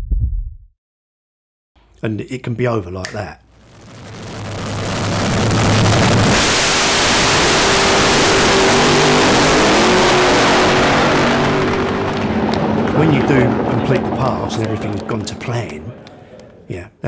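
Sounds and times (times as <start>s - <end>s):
drag racing car engine at full throttle: 3.7s - 16.1s.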